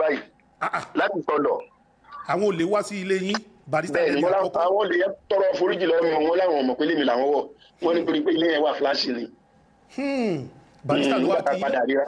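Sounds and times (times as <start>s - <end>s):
man talking: 0.0s - 9.3s, 9.9s - 12.0s.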